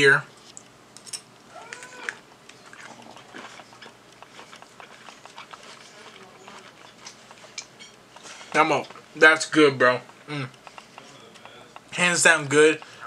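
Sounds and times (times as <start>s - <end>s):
person chewing food: 1.6s - 13.0s.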